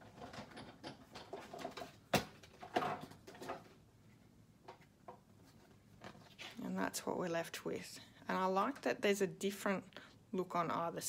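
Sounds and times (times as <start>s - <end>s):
small knocks and rustles: 0.0s - 6.7s.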